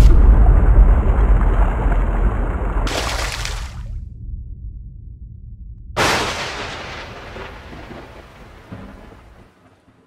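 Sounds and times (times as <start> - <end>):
low rumble: 0.0 - 8.7.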